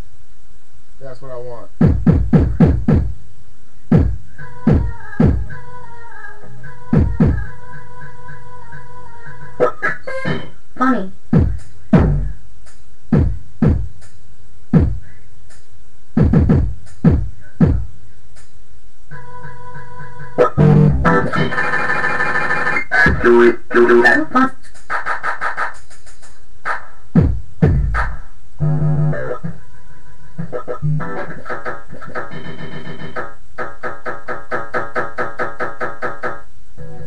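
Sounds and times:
electronic beat: 1.8 - 3.2, 3.9 - 5.7, 6.5 - 8.3, 9.6 - 29.6, 30.4 - 37.0
kick drum and percussion hits: 1.8 - 3.2, 3.9 - 5.5, 6.9 - 7.5, 11.3 - 14.1, 14.7 - 15.0, 16.2 - 17.9, 26.7 - 28.2
organ-like keyboard chords: 9.6 - 12.4, 19.1 - 25.4, 27.7 - 37.0.

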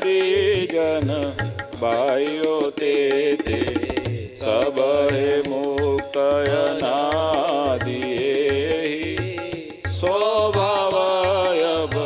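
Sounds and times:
person singing devotional chant: 0.0 - 12.0
tabla drum strokes: 0.0 - 12.0.

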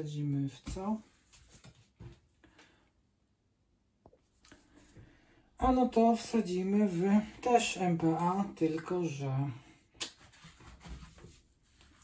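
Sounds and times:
faint taps and rustles of handling: 0.6 - 2.8.

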